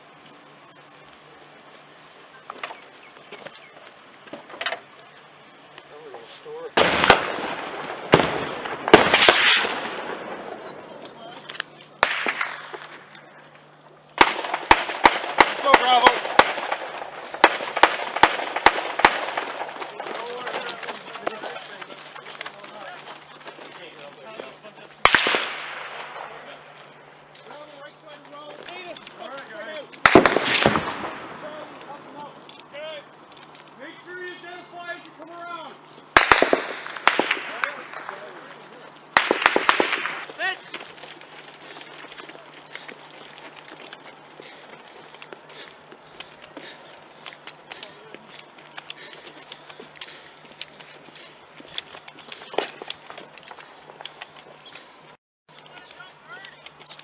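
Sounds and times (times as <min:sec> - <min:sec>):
rapid string of gunshots: 0:06.8 - 0:10.6, 0:12.0 - 0:13.0, 0:14.2 - 0:20.6, 0:25.0 - 0:26.5, 0:30.0 - 0:31.5, 0:36.1 - 0:38.5, 0:39.1 - 0:40.6
gunshots with echoing tail: 0:06.8 - 0:10.8, 0:12.0 - 0:13.0, 0:14.2 - 0:20.2, 0:25.0 - 0:26.8, 0:30.0 - 0:31.8, 0:36.2 - 0:40.4.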